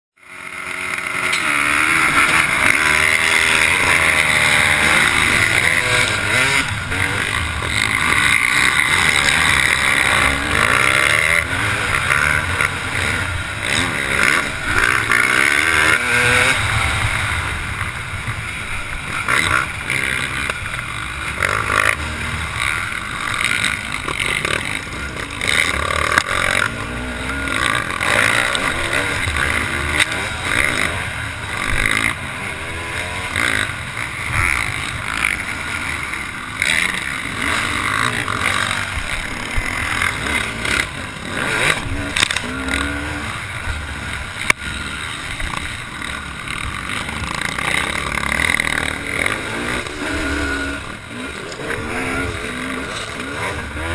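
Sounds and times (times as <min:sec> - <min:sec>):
motocross engine revving: 0:00.2 - 0:53.9
other dirt bikes running: 0:00.2 - 0:53.9.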